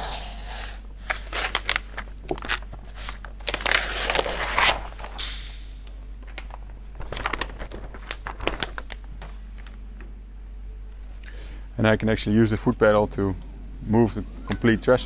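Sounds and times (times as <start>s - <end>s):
foil rustling and crackling: 1.0s - 5.5s, 6.2s - 9.9s.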